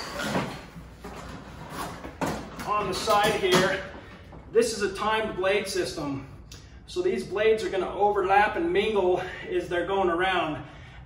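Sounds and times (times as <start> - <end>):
rattling and shuffling: 0.0 - 4.6.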